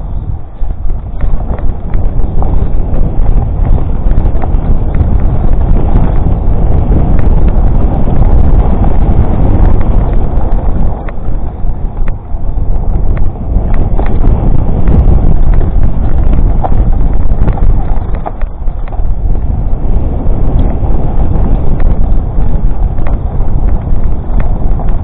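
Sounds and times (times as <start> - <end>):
bike clicks and rattles: 0.0 - 25.0
tyres rumbling over dirt trail: 0.0 - 25.0
wind buffeting microphone: 0.0 - 25.0.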